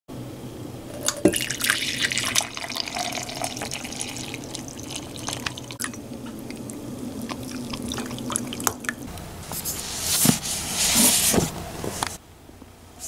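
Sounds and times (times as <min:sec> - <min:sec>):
coffee pouring into a mug: 0:01.0 - 0:09.1.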